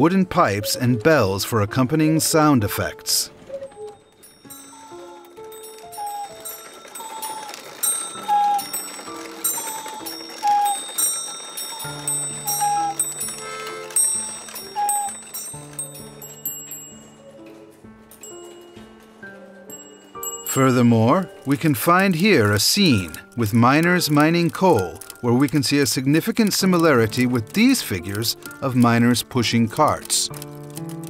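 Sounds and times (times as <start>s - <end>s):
wooden pipes playing slow tune: 0.0s - 30.5s
wooden mechanism clicking: 3.3s - 18.7s, 20.2s - 31.0s.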